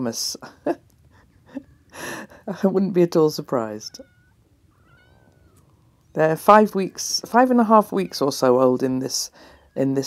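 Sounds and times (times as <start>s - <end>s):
cat meowing faintly: 3.9s - 6.1s.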